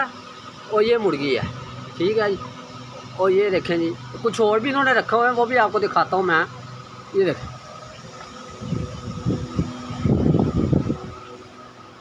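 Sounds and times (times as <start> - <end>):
air cooler fan humming: 0.0 - 12.0.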